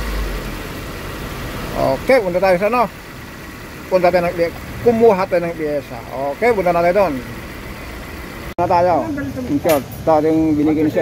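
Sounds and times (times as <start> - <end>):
car engine idling: 0.0 - 11.0
man speaking: 1.7 - 2.9, 3.9 - 7.3, 8.6 - 11.0.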